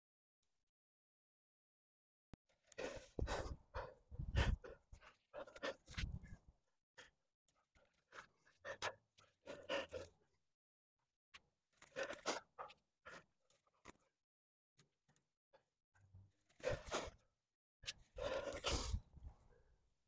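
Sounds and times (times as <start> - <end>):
person breathing hard: 2.7 - 6.4, 18.1 - 19.7.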